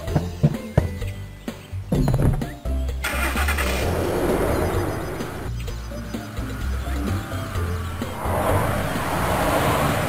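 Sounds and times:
background music: 0.0 - 10.0
car engine starting and running: 2.9 - 10.0.

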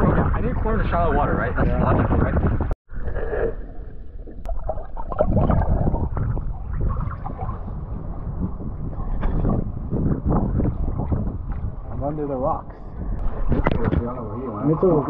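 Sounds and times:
seawater sloshing and splashing: 2.9 - 15.0
steady rumble: 3.8 - 15.0.

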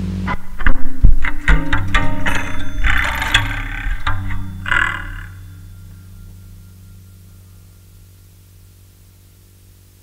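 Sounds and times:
distorted plucked wire strings: 0.0 - 9.7
steady low hum: 0.0 - 10.0.

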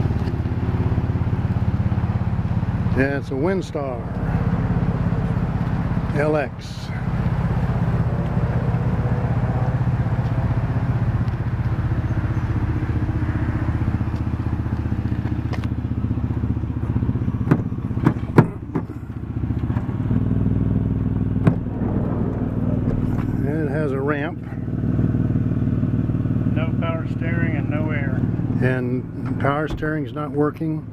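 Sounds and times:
car engine idling: 0.0 - 30.9.

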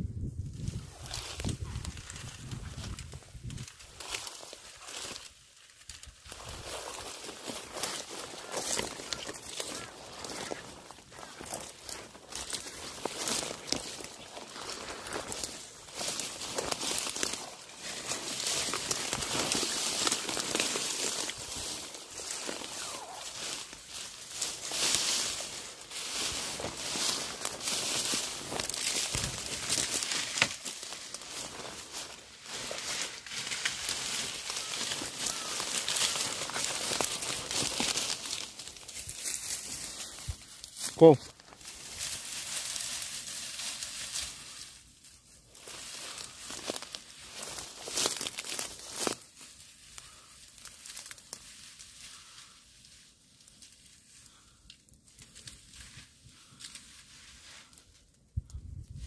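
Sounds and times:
dry reeds rustling and crackling: 0.0 - 59.0.

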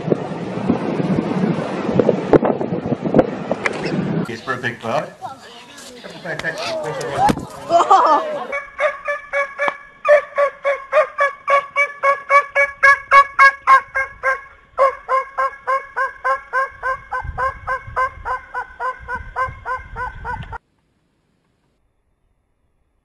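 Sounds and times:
gobbling poultry calls: 8.4 - 20.6.

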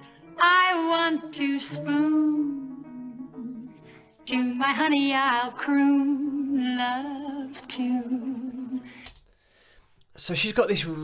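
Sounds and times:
woman singing with vibrato: 0.4 - 8.9.

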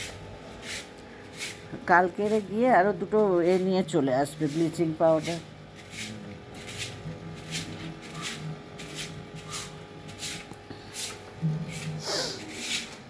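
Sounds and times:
broom sweeping concrete: 0.0 - 13.0.

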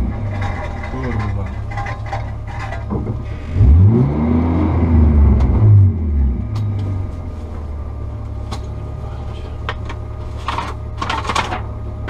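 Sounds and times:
car engine revving: 0.0 - 10.3
car engine idling: 0.0 - 12.0.

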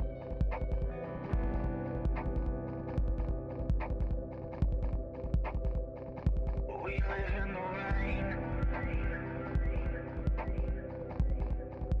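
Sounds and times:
person singing: 6.7 - 11.6.

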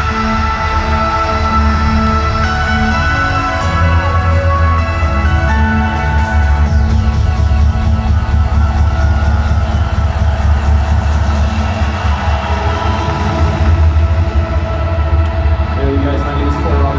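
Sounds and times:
electronic dance music: 0.0 - 16.9.

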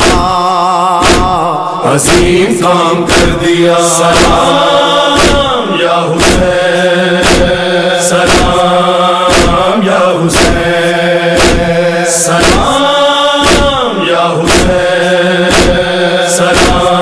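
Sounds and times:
struck drum beat: 0.0 - 2.4, 3.0 - 3.4, 4.0 - 8.7, 9.3 - 10.8, 11.4 - 11.8, 12.4 - 12.8, 13.4 - 14.9, 15.5 - 15.9, 16.5 - 17.0
person chanting long notes: 0.3 - 7.7.

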